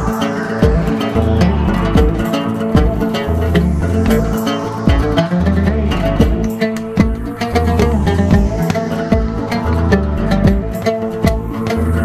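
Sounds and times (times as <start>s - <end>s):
low bass notes: 0.0s - 12.0s
oud plucked melody: 0.0s - 12.0s.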